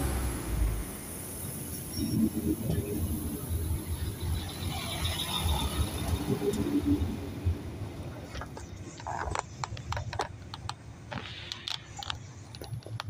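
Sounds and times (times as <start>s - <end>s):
diesel railcar engine rumble: 0.0s - 13.0s.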